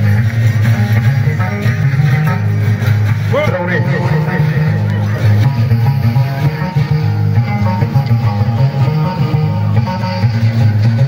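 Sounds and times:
music with steady bass: 0:00.0 - 0:11.0.

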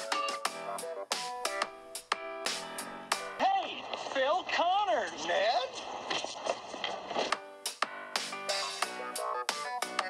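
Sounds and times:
electronic music: 0:00.0 - 0:03.8, 0:07.3 - 0:10.0
background noise: 0:00.0 - 0:10.0.

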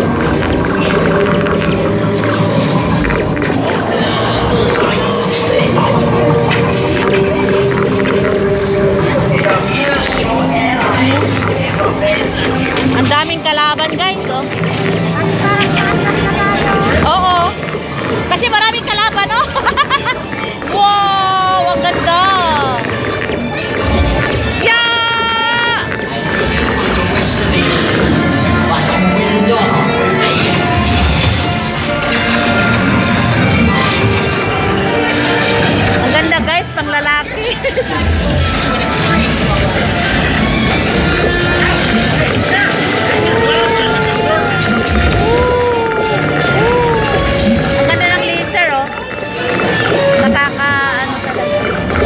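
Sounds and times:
music with electronic sound effects: 0:00.0 - 0:20.8, 0:21.8 - 0:52.0.

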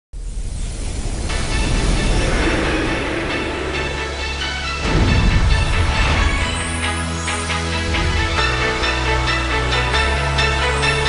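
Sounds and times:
rushing rumbling noise effect: 0:00.2 - 0:08.4.

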